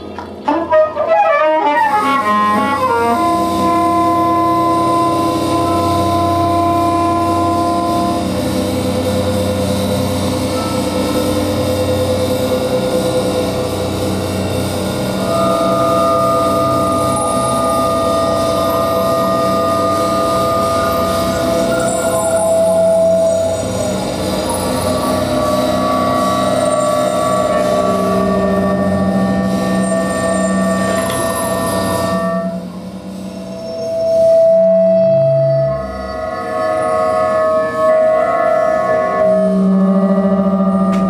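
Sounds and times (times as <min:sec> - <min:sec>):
dense steady drone: 0:00.0 - 0:41.0
long held tones: 0:00.0 - 0:41.0
saxophone gliding notes: 0:00.0 - 0:41.0.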